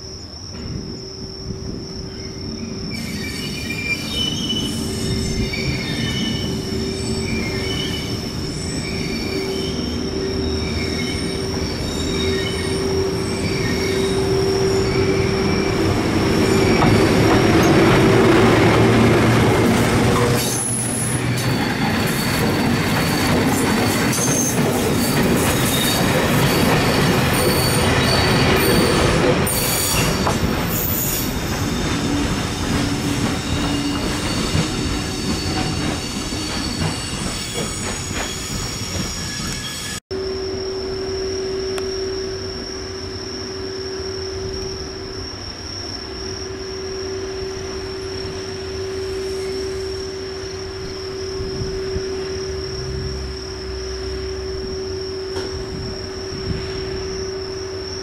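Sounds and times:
crickets chirping: 0.0 - 58.0
freight train passing: 0.4 - 40.0, 47.4 - 58.0
high wheel squeal: 2.9 - 40.1, 47.2 - 58.0
wheels rattling on rail joints: 10.5 - 40.0.

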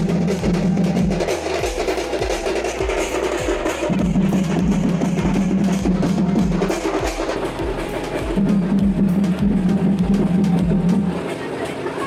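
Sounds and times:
procession drums beating: 0.0 - 11.4.

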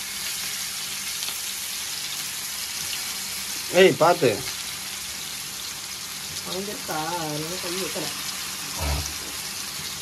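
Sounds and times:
fish sizzling in oil: 0.0 - 10.0.

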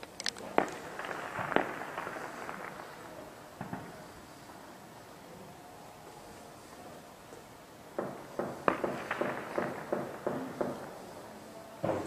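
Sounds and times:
small cracks: 0.0 - 2.9
explosions echoing: 0.5 - 4.6, 7.9 - 11.1.

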